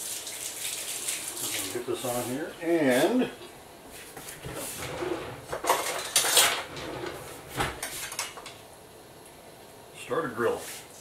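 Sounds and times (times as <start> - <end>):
cutlery clattering in a drawer: 5.5 - 7.2.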